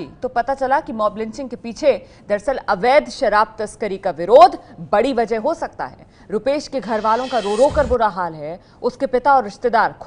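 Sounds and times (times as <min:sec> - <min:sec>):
woman narrating: 0:00.0 - 0:10.0
hissing whoosh: 0:06.8 - 0:08.2.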